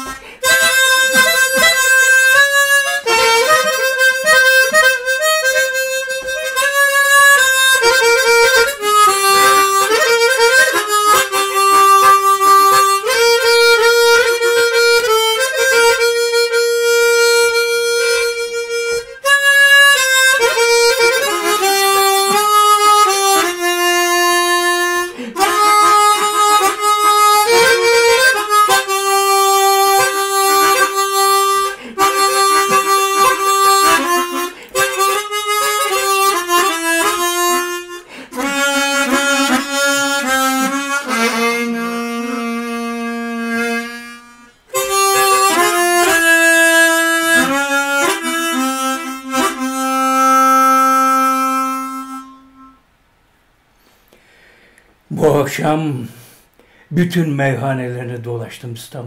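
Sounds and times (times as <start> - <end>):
harmonica slow melody: 0.0 - 57.2.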